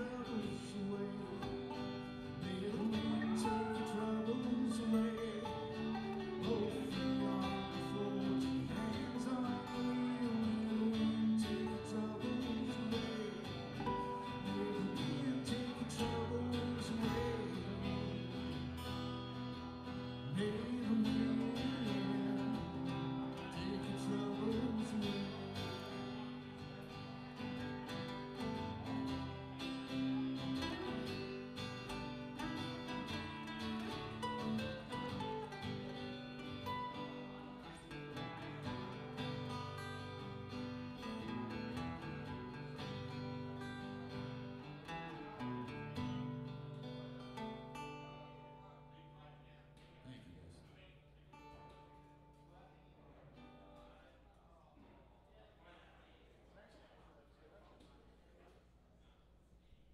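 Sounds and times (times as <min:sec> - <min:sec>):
two acoustic guitars playing: 0:00.0 - 0:50.2, 0:50.8 - 0:53.9.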